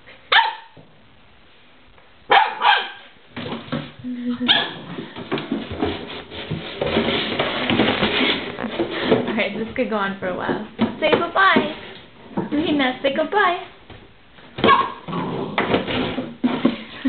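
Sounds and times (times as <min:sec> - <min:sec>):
puppy barking: 0:00.3 - 0:00.8, 0:02.3 - 0:03.1, 0:04.5 - 0:04.8, 0:14.6 - 0:15.1.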